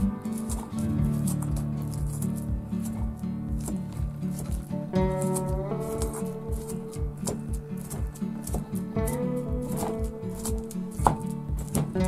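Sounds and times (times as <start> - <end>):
wooden pestle knocking in mortar: 0.0 - 12.0.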